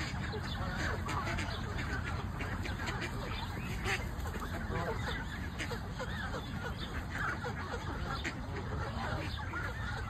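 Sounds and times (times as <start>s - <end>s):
geese and ducks calling: 0.0s - 10.0s.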